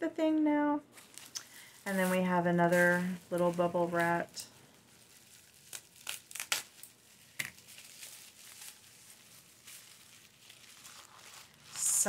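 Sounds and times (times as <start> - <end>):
bubble wrap crinkling: 0.9 - 12.0.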